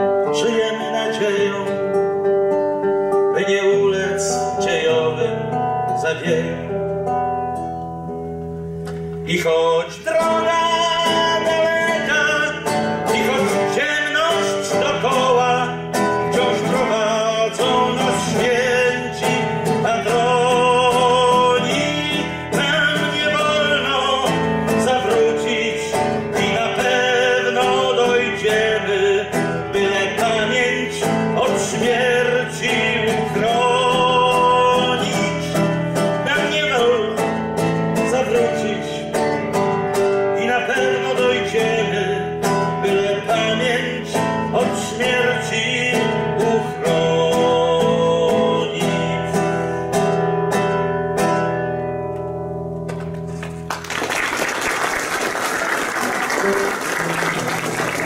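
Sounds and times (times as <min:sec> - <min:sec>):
man singing with vibrato: 0:00.0 - 0:07.7, 0:09.2 - 0:51.9
nylon-string guitar strumming: 0:00.0 - 0:53.7, 0:56.1 - 0:58.0.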